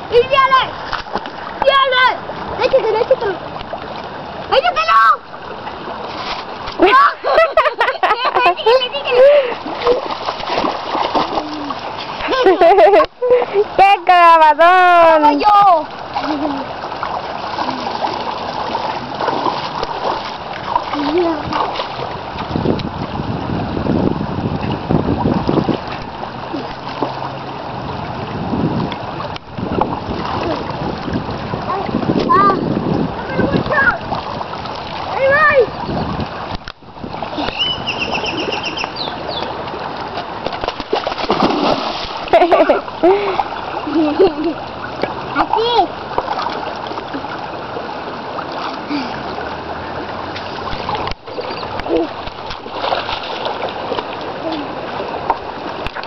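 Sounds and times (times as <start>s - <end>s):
creek water running over rocks: 0.0s - 56.0s
river rushing: 0.0s - 56.0s
child's high-pitched voice: 0.1s - 0.7s, 1.6s - 3.4s, 4.5s - 5.2s, 6.8s - 7.2s, 8.1s - 9.5s, 21.0s - 21.5s, 31.7s - 34.1s, 35.1s - 35.8s, 45.4s - 46.0s.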